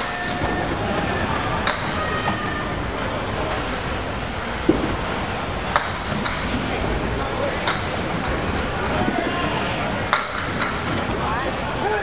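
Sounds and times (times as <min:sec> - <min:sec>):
bowling balls rolling on lanes: 0:00.0 - 0:11.8.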